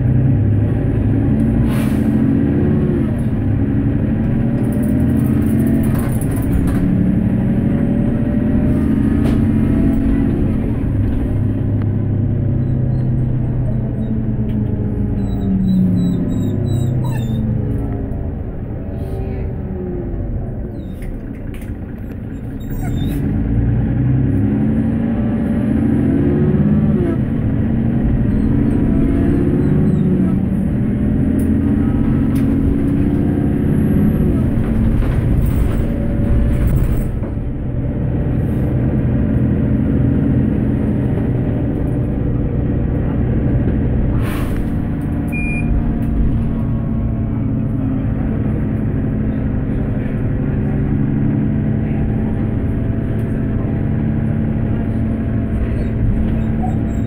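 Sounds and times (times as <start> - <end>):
bus diesel engine running: 0.0 - 57.0.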